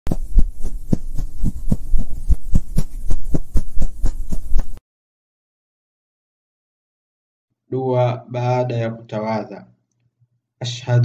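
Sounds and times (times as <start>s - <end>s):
rapid low thumps: 0.1s - 4.8s
steady low hum: 0.1s - 4.8s.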